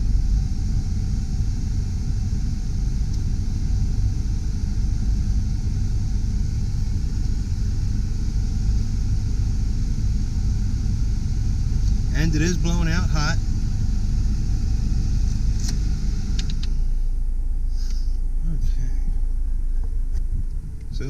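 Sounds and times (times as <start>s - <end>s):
heater fan blowing air: 0.0s - 18.6s
car engine idling: 0.0s - 21.0s.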